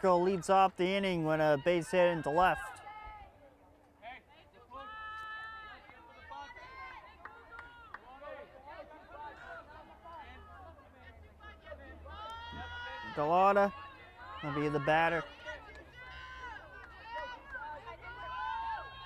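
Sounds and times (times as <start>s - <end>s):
girls calling and cheering: 4.7s - 19.0s.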